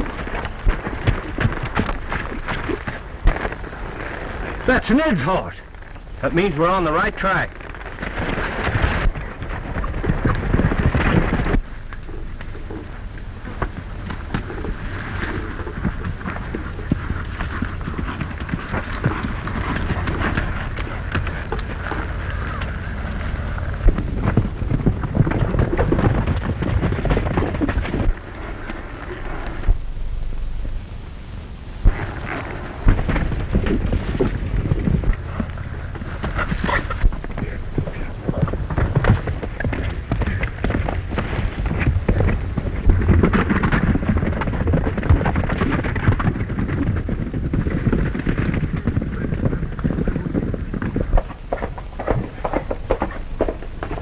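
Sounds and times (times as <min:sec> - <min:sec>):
horses galloping: 0:00.0 - 0:54.0
soundtrack hiss: 0:00.0 - 0:54.0
sharp loud cracks: 0:31.7 - 0:35.3.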